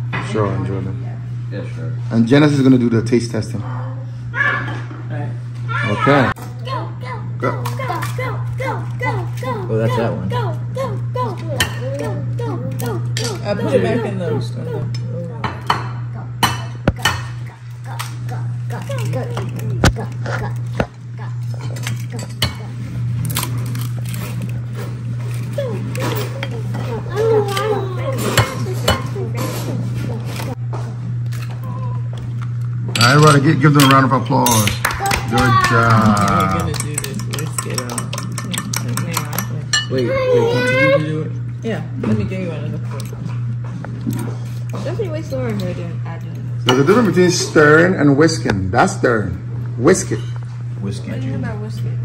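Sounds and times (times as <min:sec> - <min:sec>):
whisk clicking against bowl: 0:36.7 - 0:39.6.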